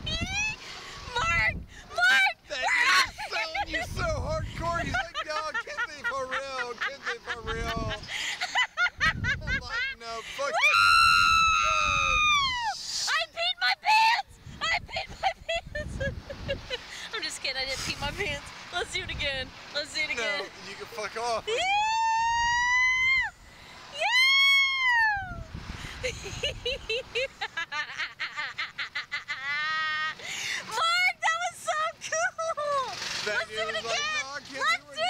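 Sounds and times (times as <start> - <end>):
person laughing hard: 4.5 - 10.0, 14.6 - 16.9, 25.9 - 30.3.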